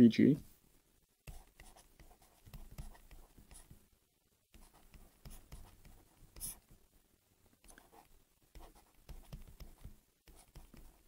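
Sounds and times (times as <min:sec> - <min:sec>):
stylus tapping on a tablet: 0:01.3 - 0:03.8, 0:08.6 - 0:11.0.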